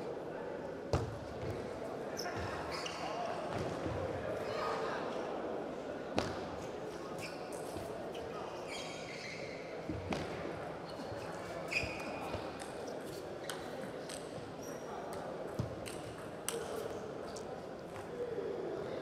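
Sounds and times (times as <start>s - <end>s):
murmur of large hall: 0.0s - 19.0s
shoe squeaks on floor: 2.2s - 3.5s, 7.0s - 9.8s, 10.8s - 15.2s.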